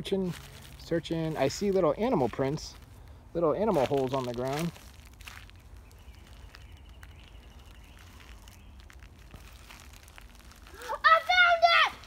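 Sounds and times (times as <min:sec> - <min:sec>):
footsteps on dry pine needles: 0:00.0 - 0:12.0.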